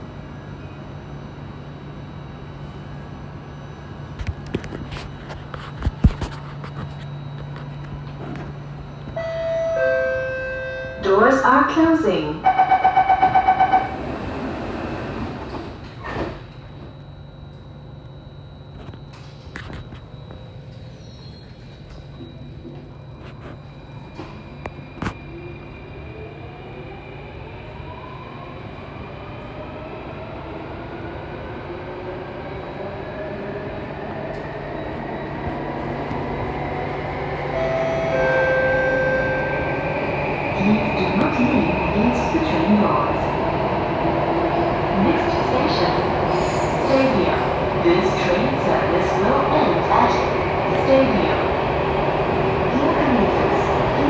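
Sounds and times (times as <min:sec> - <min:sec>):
low train hum: 0:00.0 - 0:54.0
train doors closing with a thud: 0:12.6 - 0:17.0.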